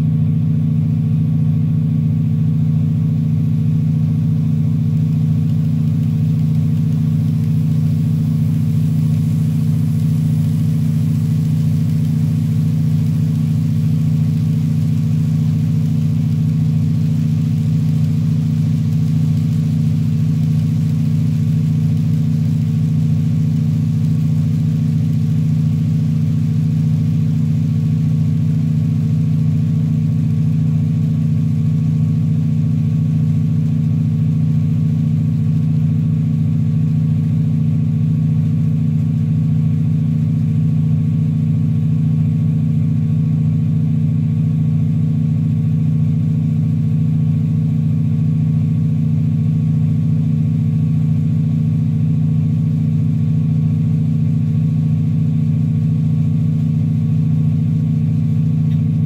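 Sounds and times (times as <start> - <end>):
synthesized diesel locomotive engine: 3.2 - 28.8.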